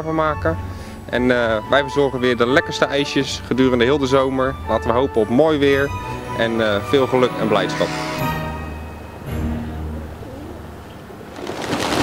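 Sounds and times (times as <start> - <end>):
pigeons cooing: 9.9 - 12.0.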